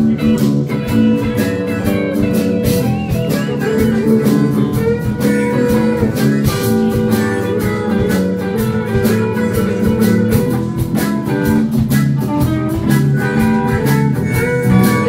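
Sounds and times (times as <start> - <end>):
blues band playing: 0.0 - 15.0
drum kit beat: 0.0 - 15.0
harmonica: 0.0 - 15.0.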